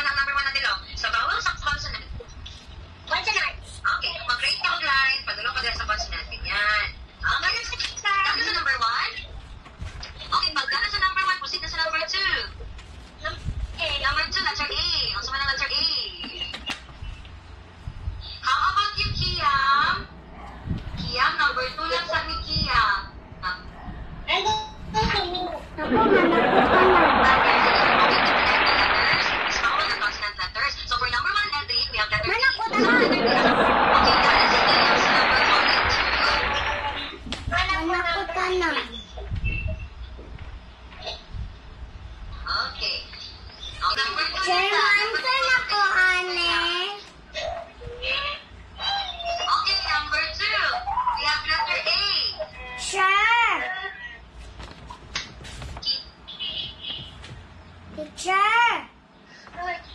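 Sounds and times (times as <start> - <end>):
child speaking: 24.3 - 26.0, 29.6 - 33.4, 37.5 - 39.3, 43.9 - 54.2, 57.9 - 59.9
children chattering: 32.4 - 37.2.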